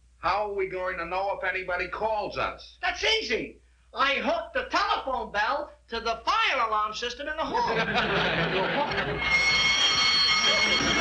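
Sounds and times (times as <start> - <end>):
electric alarm bell ringing: 8.4 - 11.0.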